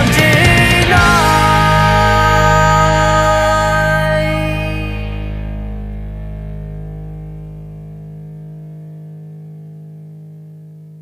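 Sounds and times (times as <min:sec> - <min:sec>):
bass guitar: 0:00.0 - 0:11.0
distorted electric guitar chord ringing: 0:00.0 - 0:11.0.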